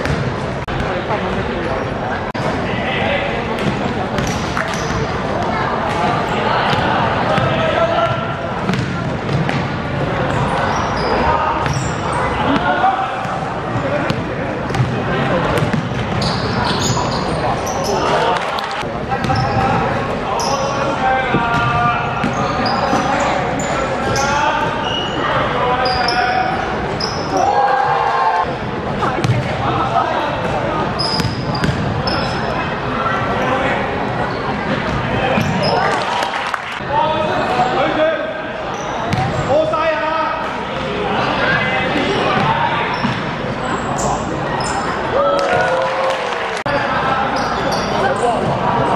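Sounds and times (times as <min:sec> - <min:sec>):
basketball bouncing on wooden court: 0:00.0 - 0:00.2, 0:08.1 - 0:09.6, 0:14.1 - 0:15.0, 0:15.6 - 0:16.2, 0:31.2 - 0:31.9
sneaker squeaks: 0:03.6 - 0:05.2, 0:10.2 - 0:14.9, 0:15.6 - 0:18.3, 0:19.2 - 0:20.9, 0:21.5 - 0:27.6, 0:30.9 - 0:32.6, 0:34.2 - 0:36.0, 0:38.7 - 0:39.6, 0:42.3 - 0:45.1, 0:47.3 - 0:48.9.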